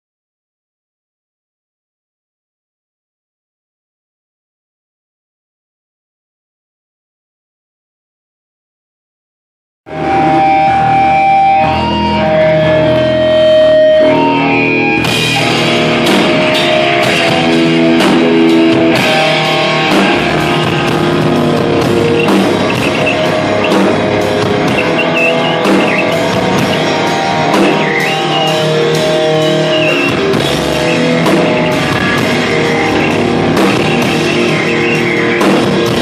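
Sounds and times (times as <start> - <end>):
drum kit: 9.9 - 36.0
live rock band: 9.9 - 36.0
sustained guitar notes: 9.9 - 36.0.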